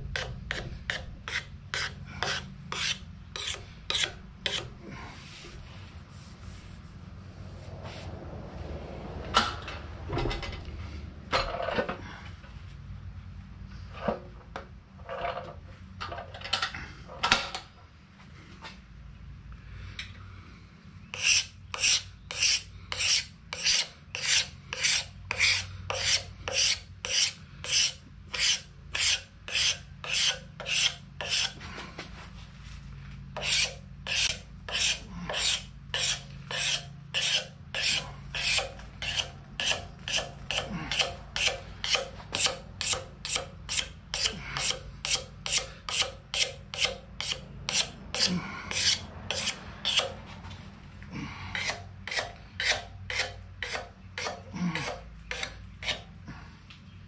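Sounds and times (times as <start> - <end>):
rasp scraping wooden handle: 0.1 - 4.8, 21.1 - 31.6, 33.4 - 50.2, 51.6 - 56.1.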